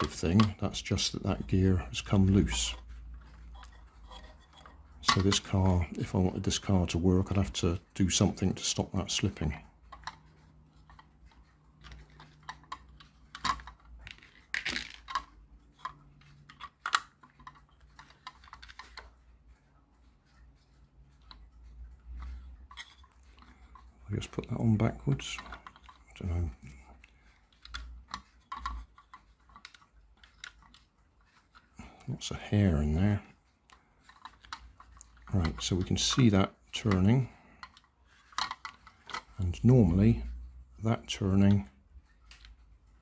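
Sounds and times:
plastic toy gears clicking: 0.0s - 19.2s, 21.2s - 40.4s.

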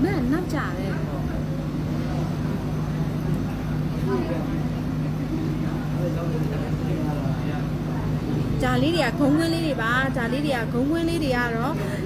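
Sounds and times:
people talking in a hall: 0.0s - 12.0s
steady low hum: 0.0s - 12.0s.

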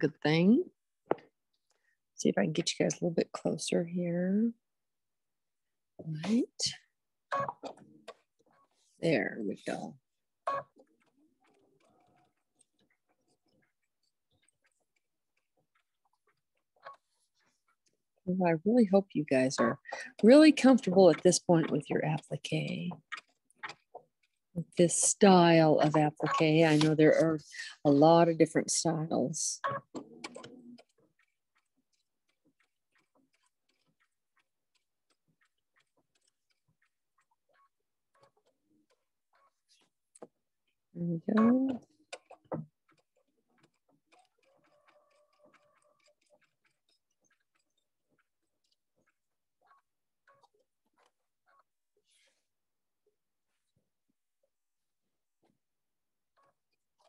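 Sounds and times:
sewing machine ticking: 10.5s - 40.3s, 41.4s - 51.2s.

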